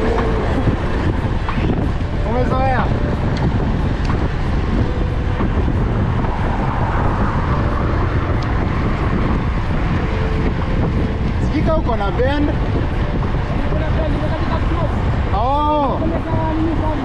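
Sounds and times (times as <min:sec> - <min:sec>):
road traffic: 0:00.0 - 0:17.0
wind rushing over microphone: 0:00.0 - 0:17.0.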